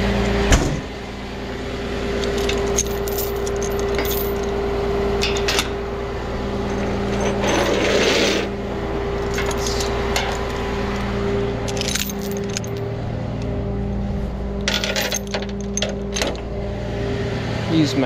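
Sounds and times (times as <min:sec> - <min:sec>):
engine hum: 0:00.0 - 0:18.0
chain rattling on metal deck: 0:02.2 - 0:04.6, 0:05.2 - 0:05.8, 0:09.2 - 0:10.6, 0:11.6 - 0:12.8, 0:14.6 - 0:16.5.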